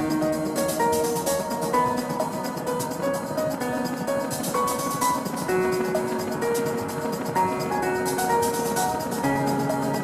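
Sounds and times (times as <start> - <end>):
fast hi-hat pattern: 0.0 - 10.0.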